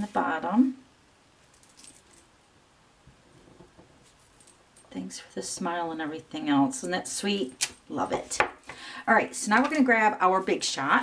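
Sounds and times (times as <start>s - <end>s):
light clicks and jingles: 1.4s - 2.3s, 3.9s - 5.0s.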